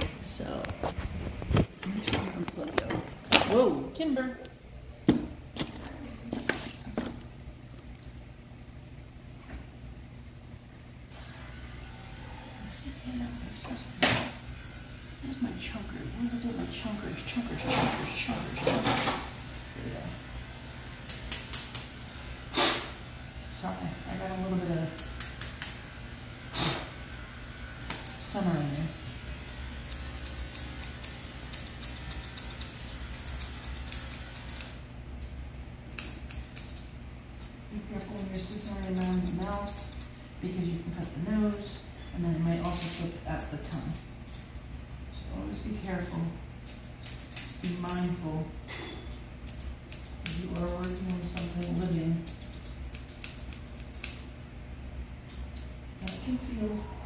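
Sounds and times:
shears snipping hair: 11.2 - 19.4, 20.6 - 27.0, 27.6 - 44.6, 45.6 - 54.4, 55.2 - 56.9.

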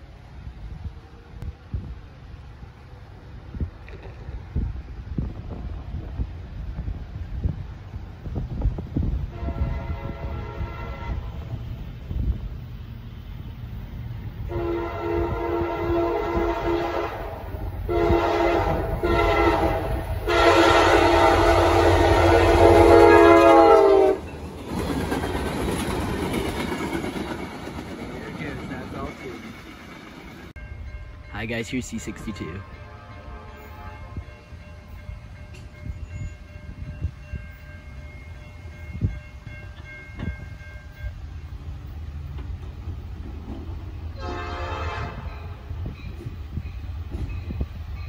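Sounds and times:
locomotive engine rumbling: 0.0 - 48.0
train rumbling on rails: 0.0 - 48.0
locomotive air horn blasts: 9.3 - 11.5, 14.5 - 24.2, 32.3 - 34.4, 44.2 - 45.5.

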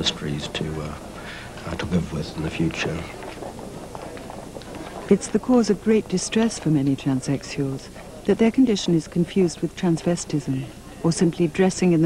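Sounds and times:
crowd footsteps on pavement: 0.0 - 8.7
street noise hum: 0.0 - 12.0.

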